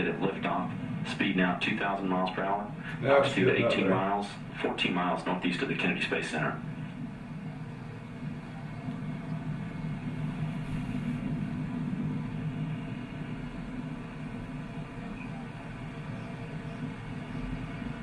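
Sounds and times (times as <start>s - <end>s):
rocket engines rumbling over speakers: 0.0s - 18.0s.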